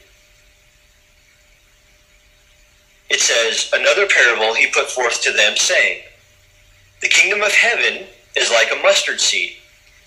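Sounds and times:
faint hum: 0.0 - 10.0
low hiss: 0.0 - 10.0.

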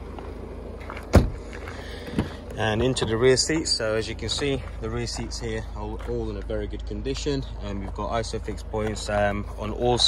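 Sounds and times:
low background rumble: 0.0 - 10.0
car door shutting: 0.8 - 3.4.

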